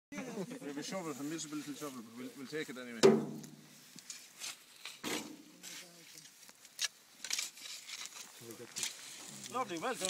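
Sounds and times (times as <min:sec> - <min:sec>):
shovel scraping into soil: 0:03.3 - 0:05.9, 0:06.8 - 0:10.0.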